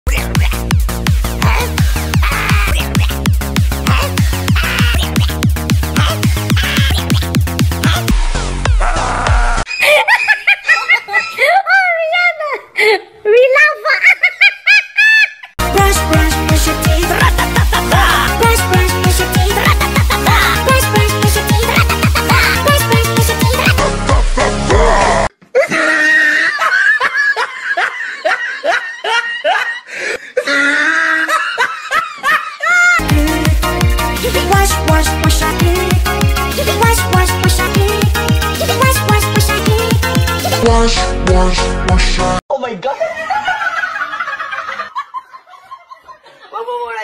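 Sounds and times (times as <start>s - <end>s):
high-pitched cartoonish laughter: 0.1s - 0.7s, 1.4s - 8.2s, 8.8s - 23.9s, 25.6s - 29.8s, 30.4s - 33.0s.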